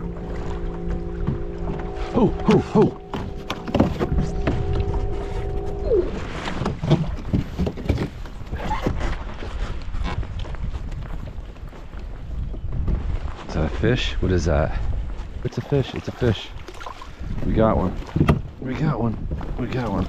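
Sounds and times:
steady tone sliding down: 0.0 - 7.2
water moving around kayak: 0.0 - 20.0
wind buffeting microphone: 0.0 - 20.0.

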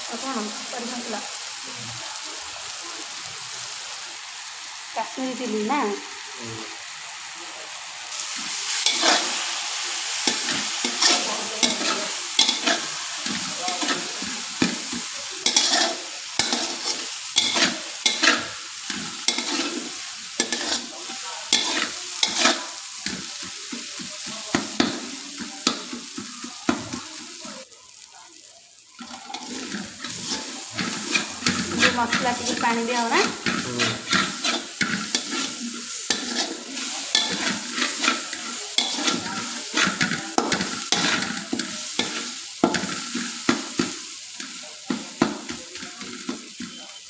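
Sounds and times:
onions sizzling in hot oil: 0.0 - 47.0
metal spatula scraping pan: 8.2 - 9.5, 10.2 - 23.9, 29.0 - 43.9.

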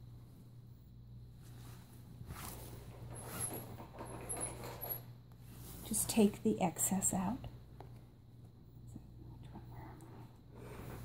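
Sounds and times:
ribbon rustling through grommets: 1.4 - 6.3
thin high squeaks: 3.0 - 5.1.

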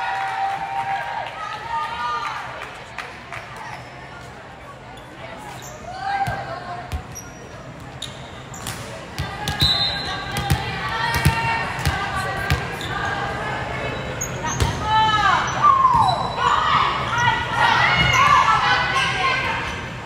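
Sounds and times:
voices echoing in gym: 0.0 - 20.0.

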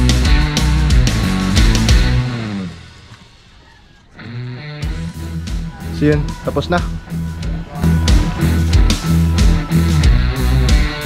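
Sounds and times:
background rock music: 0.0 - 11.0.

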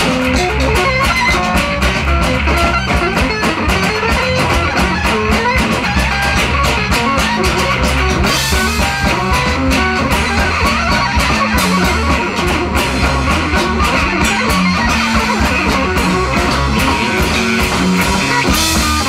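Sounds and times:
drum kit hits: 0.0 - 19.0
electric guitar: 0.0 - 19.0.

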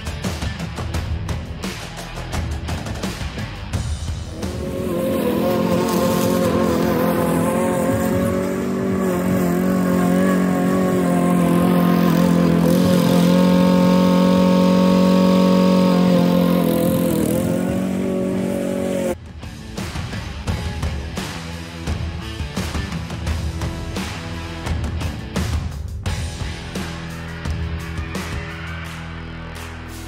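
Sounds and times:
lawn mower engine running: 4.2 - 19.2.

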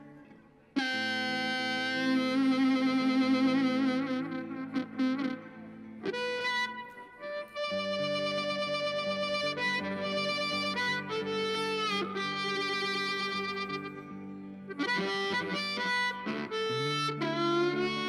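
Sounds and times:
amplified blues harmonica: 0.0 - 18.0
electric guitar accompaniment: 0.0 - 18.0.

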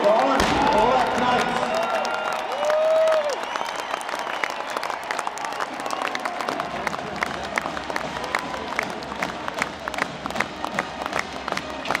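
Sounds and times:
announcer voice over loudspeaker: 0.0 - 2.1
crowd applauding and cheering: 0.0 - 12.0.

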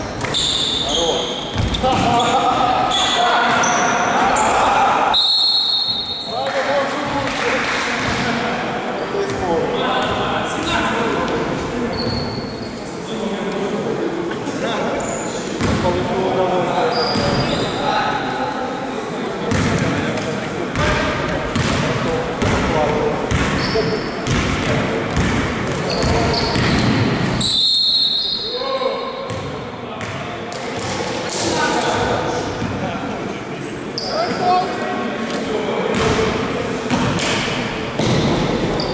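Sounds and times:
echoing indistinct voices: 0.0 - 27.5, 28.4 - 38.9
basketball dribbling on hall floor: 24.2 - 27.2.

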